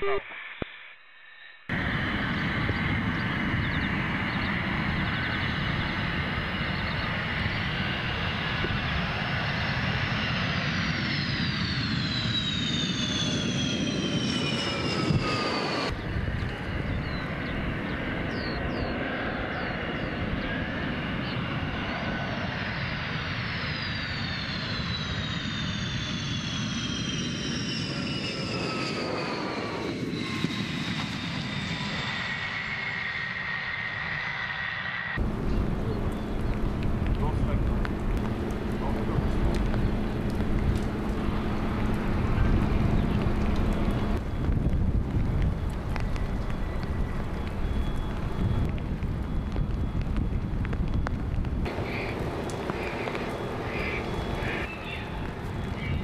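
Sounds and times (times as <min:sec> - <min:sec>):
jet fighter passing low: 0:00.0 - 0:56.0.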